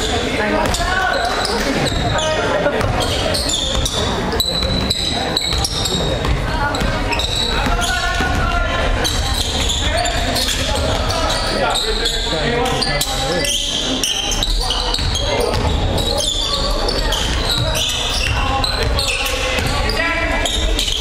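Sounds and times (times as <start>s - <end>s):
spectators' voices echoing: 0.0s - 21.0s
basketball bouncing on hardwood: 2.8s - 3.1s.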